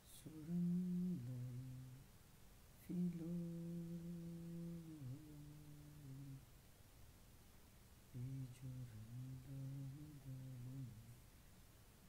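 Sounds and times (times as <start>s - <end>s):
person humming softly: 0.0s - 2.1s, 2.8s - 6.4s, 8.2s - 11.2s.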